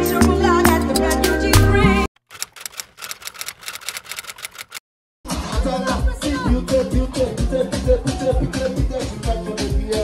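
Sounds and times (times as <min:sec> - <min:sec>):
typewriter keystroke clicks: 0:02.2 - 0:04.8.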